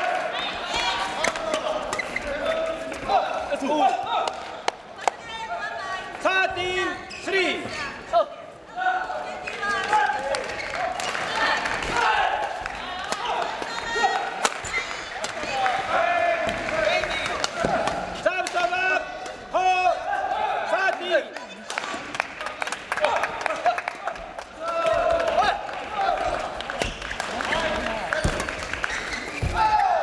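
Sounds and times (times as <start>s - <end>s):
players' voices and calls: 0.0s - 30.0s
shoes squeaking on court floor: 1.8s - 3.0s, 7.0s - 7.8s, 26.8s - 29.7s.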